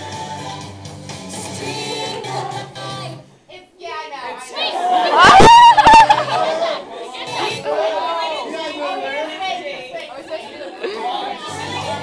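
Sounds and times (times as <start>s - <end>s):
audience chatter: 4.2s - 12.0s.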